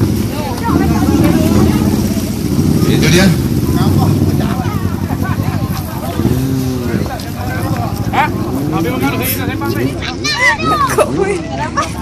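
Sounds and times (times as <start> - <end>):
motorcycle engines rumbling: 0.0 - 12.0
people talking: 0.0 - 12.0.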